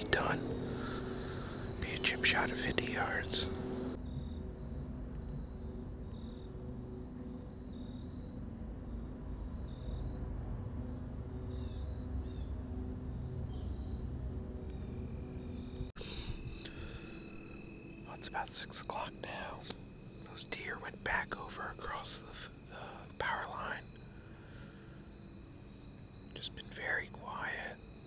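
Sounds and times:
crickets and insects chirping: 0.0 - 28.0.

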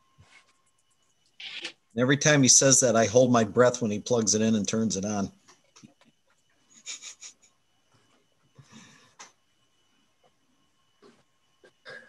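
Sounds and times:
soft handling clicks and rustles: 5.4 - 6.6.

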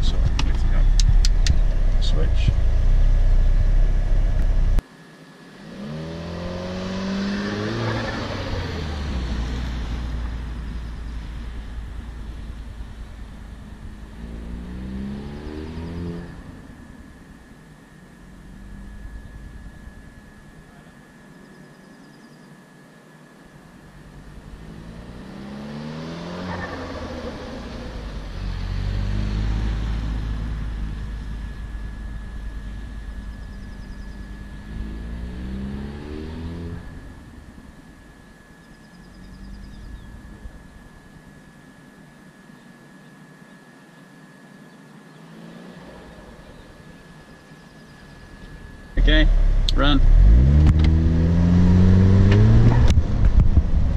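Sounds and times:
car engine accelerating: 0.0 - 4.8, 5.6 - 21.2, 23.8 - 41.8, 45.1 - 53.9.

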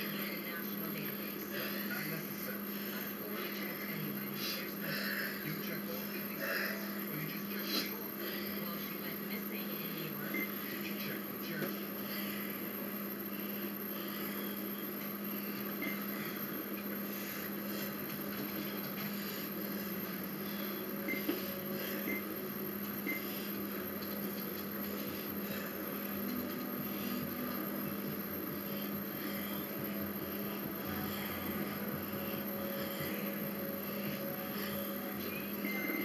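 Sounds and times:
exercise bike whirring hum: 0.0 - 36.0.

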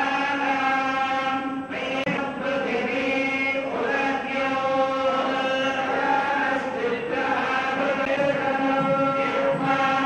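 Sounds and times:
group of men chanting in unison: 0.0 - 10.0.

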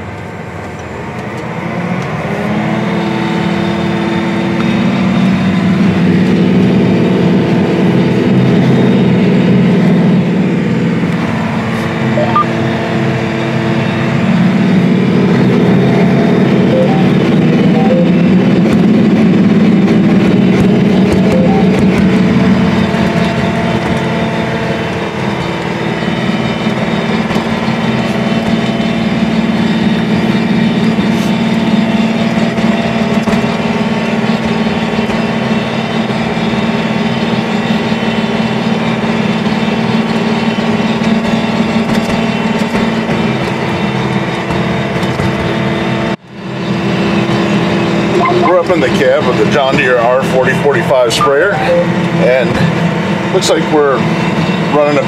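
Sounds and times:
sprayer engine droning: 3.7 - 55.0.

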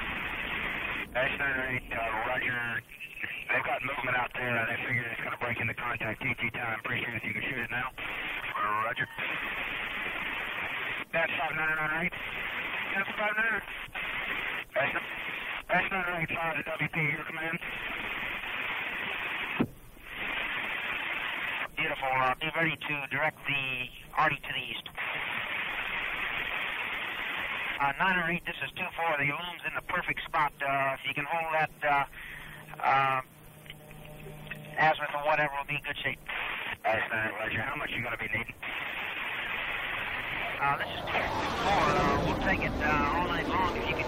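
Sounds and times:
radio static hiss: 0.0 - 44.0
person speaking over radio: 1.2 - 9.4, 11.1 - 12.2, 12.8 - 13.7, 14.8 - 17.7, 21.7 - 25.0, 27.8 - 33.3, 34.5 - 38.7, 40.0 - 44.0.

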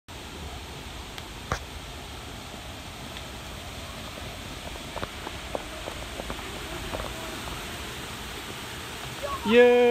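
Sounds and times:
outdoor background hiss: 0.1 - 9.9.

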